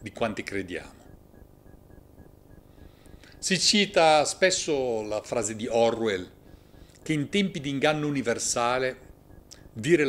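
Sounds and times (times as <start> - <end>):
faint high electronic pips: 0.0 - 10.0
low background noise: 0.0 - 10.0.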